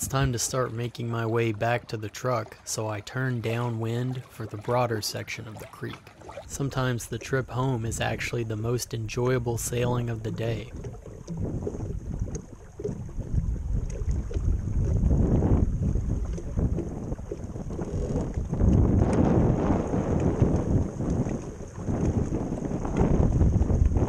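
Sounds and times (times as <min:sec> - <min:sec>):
water rushing along hull: 0:00.0 - 0:24.0
wind buffeting microphone: 0:05.6 - 0:24.0.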